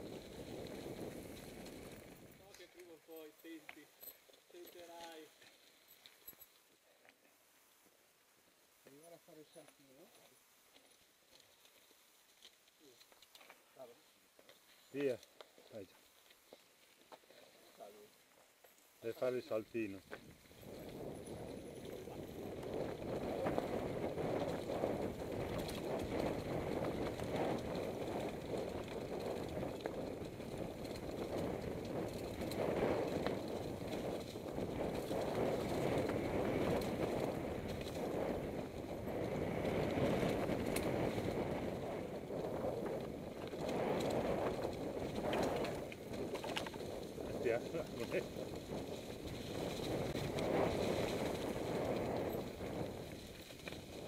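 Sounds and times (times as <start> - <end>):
bike tyres rumbling on dirt: 0.0 - 2.6, 20.0 - 54.0.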